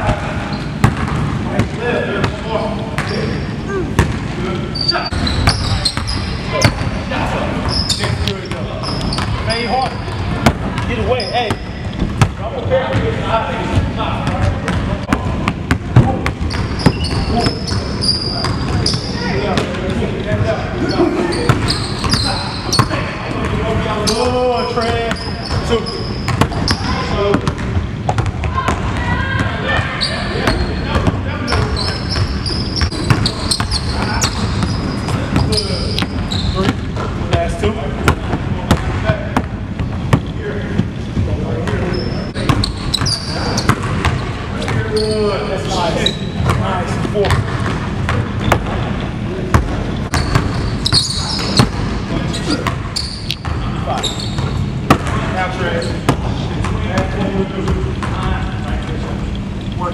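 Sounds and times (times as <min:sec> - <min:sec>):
sneaker squeaks: 0:00.0 - 0:01.2, 0:02.2 - 0:03.8, 0:04.6 - 0:07.0, 0:07.6 - 0:12.3, 0:16.1 - 0:19.7, 0:20.8 - 0:23.1, 0:24.0 - 0:27.6, 0:28.5 - 0:36.9, 0:41.7 - 0:46.6, 0:48.4 - 0:49.2, 0:50.0 - 0:55.1, 0:55.7 - 0:56.2.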